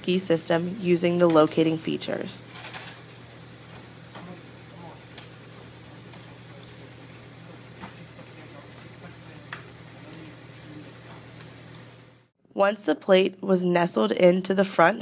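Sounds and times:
cleaning machine motor humming: 0:00.0 - 0:12.3.

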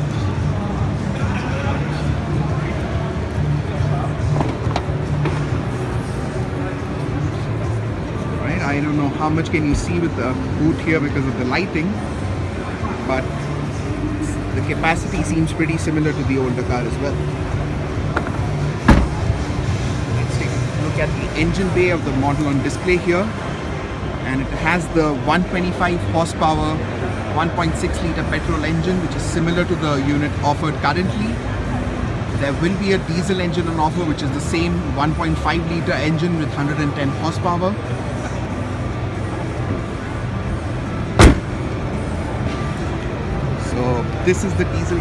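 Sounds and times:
crowd murmur: 0:00.0 - 0:21.4
low hall hum: 0:00.0 - 0:45.0
car bonnet slammed shut: 0:18.8 - 0:19.4, 0:41.2 - 0:41.6
sharp knock: 0:18.9 - 0:19.2, 0:41.2 - 0:41.5.

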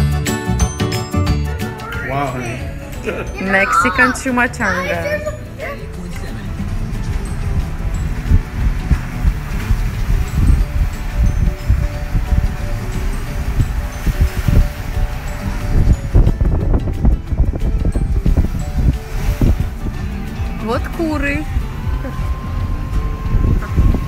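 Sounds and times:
background music: 0:00.0 - 0:24.0
wind buffeting microphone: 0:02.5 - 0:24.0.

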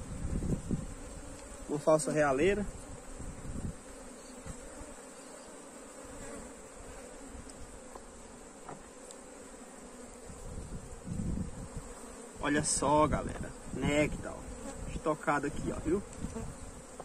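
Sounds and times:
honey bees buzzing: 0:00.0 - 0:17.0.

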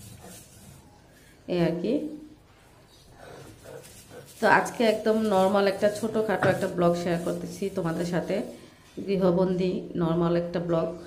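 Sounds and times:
stone pestle mashing on board: 0:03.5 - 0:07.6
person speaking: 0:03.7 - 0:10.6.

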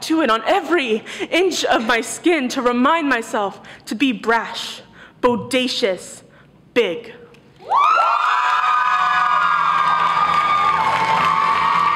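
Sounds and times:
audience cheering and whooping: 0:07.6 - 0:11.9.

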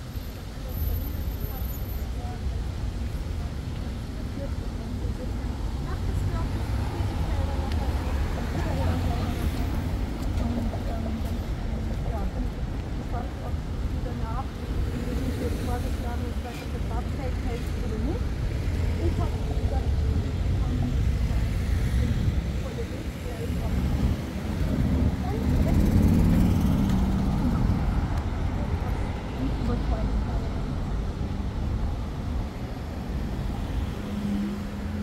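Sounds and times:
passersby talking: 0:00.0 - 0:35.0
road traffic rumble: 0:00.0 - 0:35.0.

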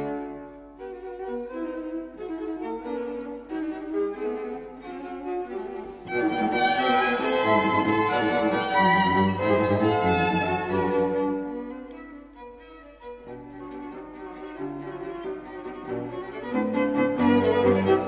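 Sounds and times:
string quartet playing fast dance: 0:00.0 - 0:18.0.

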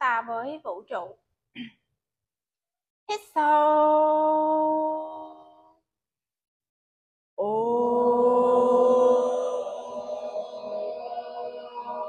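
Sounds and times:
voices chanting om in unison: 0:03.4 - 0:05.6, 0:07.4 - 0:12.0.

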